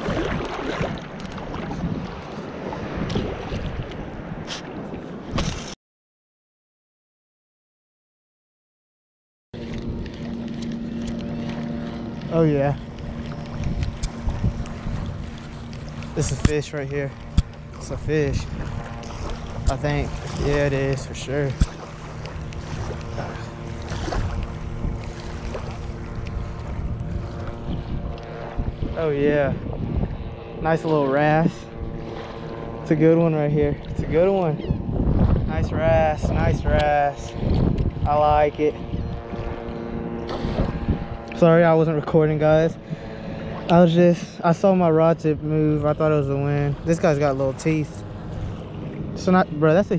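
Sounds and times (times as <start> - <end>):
wind rumbling on microphone: 0.0 - 5.8, 9.6 - 49.9
faint steady drone: 9.6 - 34.9, 38.1 - 49.9
steady low hum: 9.6 - 49.9.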